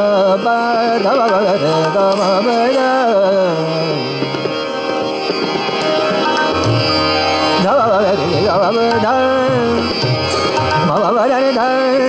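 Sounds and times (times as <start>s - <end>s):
drone holding steady notes: 0.0s - 12.0s
harmonium: 0.0s - 12.0s
light tabla strokes: 1.6s - 11.2s.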